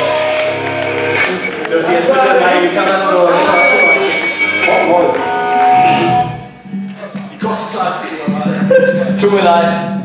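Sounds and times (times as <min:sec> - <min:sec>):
electric guitar through amplifier: 0:00.0 - 0:09.2
voices: 0:01.4 - 0:10.0.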